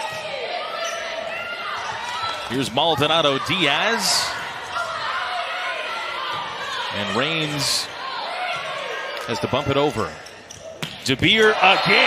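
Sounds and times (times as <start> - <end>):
arena background noise: 0.0 - 12.0
athletic shoes squeaking on court: 0.1 - 2.1.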